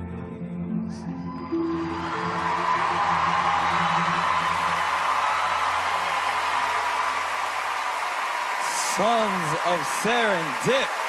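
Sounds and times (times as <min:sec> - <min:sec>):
song held notes: 0:00.0 - 0:07.0
audience cheering and applauding: 0:01.4 - 0:11.0.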